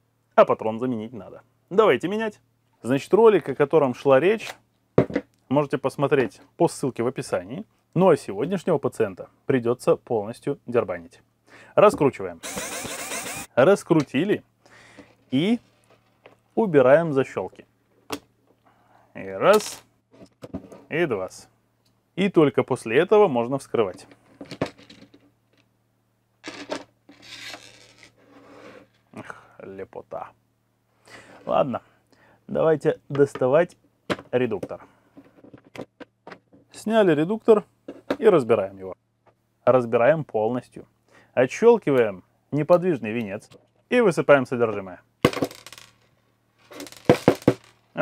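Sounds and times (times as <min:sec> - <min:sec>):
plastic clatter: 0:46.7 - 0:47.8.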